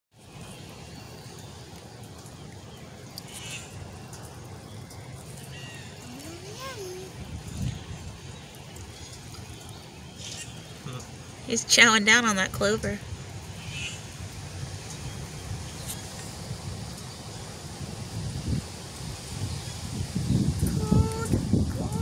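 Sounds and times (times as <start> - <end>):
low outdoor rumble: 0.2 - 22.0.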